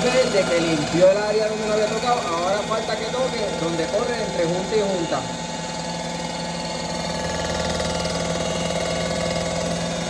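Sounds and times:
resurfacing machine cutter running: 0.0 - 10.0.

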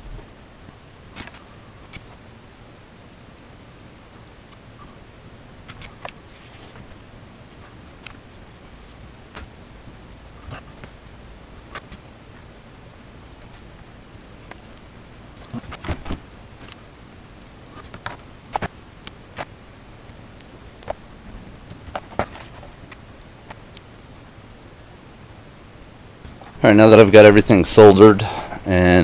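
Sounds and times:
faint room hum: 0.0 - 29.0.

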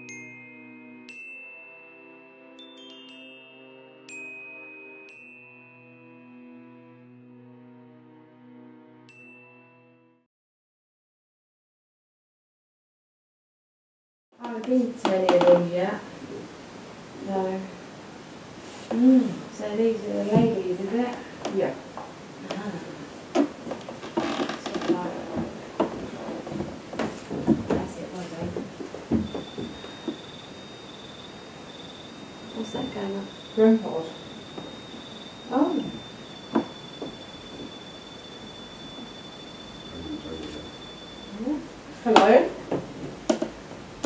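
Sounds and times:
high electronic tone: 29.3 - 41.6
people talking quietly: 39.9 - 42.6.

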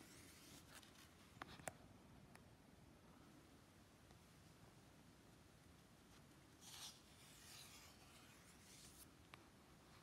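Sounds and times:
paper page turning: 6.6 - 9.1.

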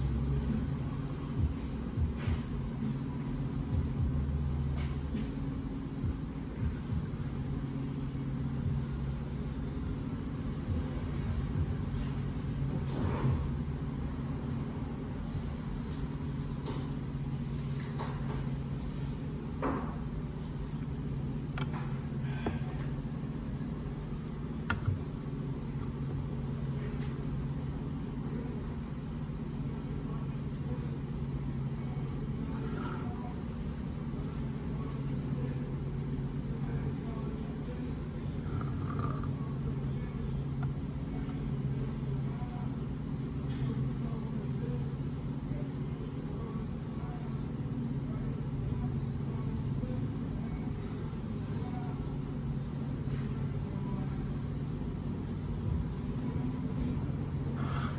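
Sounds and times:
low background hum: 0.0 - 57.9.

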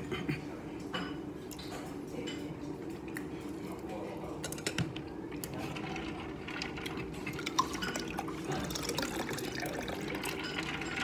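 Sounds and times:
tableware clinking: 0.8 - 2.5, 10.2 - 11.0
running water: 5.5 - 11.0.

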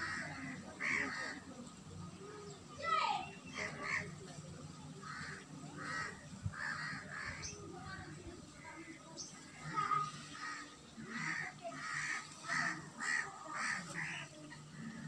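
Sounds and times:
crows cawing: 0.0 - 1.4, 3.5 - 4.1, 5.0 - 7.6, 9.6 - 15.0.

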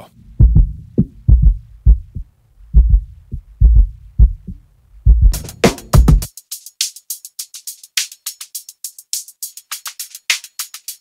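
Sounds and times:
kick drum thumps: 0.4 - 6.3.

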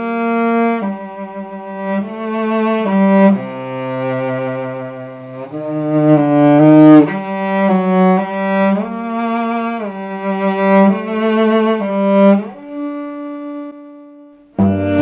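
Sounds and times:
cello playing waltz melody: 0.0 - 15.0.

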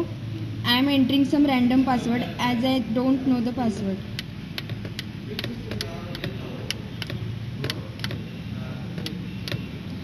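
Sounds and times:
keypad buttons clicking: 4.2 - 8.3, 8.9 - 10.0.

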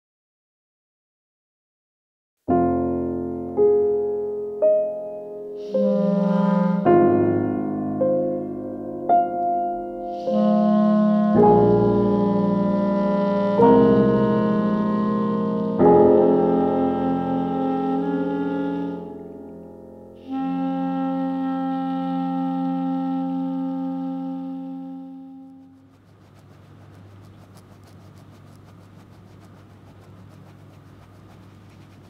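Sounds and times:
slow piano film score: 2.5 - 32.0.

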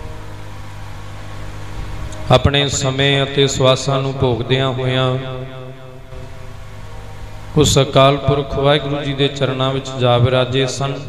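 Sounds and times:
harmonium drone: 0.0 - 11.0
man preaching: 2.2 - 5.7, 7.6 - 11.0.

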